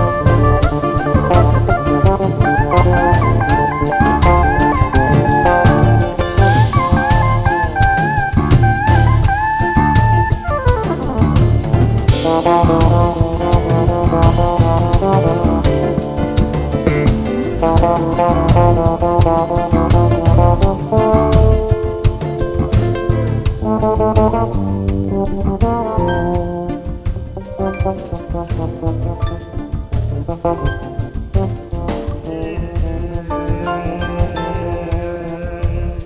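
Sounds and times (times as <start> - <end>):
bass: 0.0 - 36.0
bending lead melody: 0.0 - 36.0
drum kit beat: 0.0 - 36.0
live band playing: 0.0 - 36.0.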